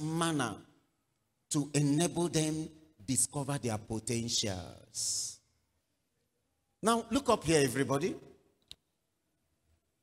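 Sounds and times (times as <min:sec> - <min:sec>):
man's voice: 0:00.0 - 0:00.7, 0:01.5 - 0:05.4, 0:06.8 - 0:08.4.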